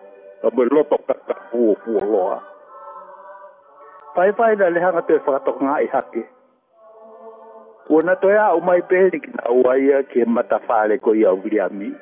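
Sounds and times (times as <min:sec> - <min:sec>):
man speaking: 0:00.4 - 0:02.5, 0:04.2 - 0:06.3, 0:07.9 - 0:12.0.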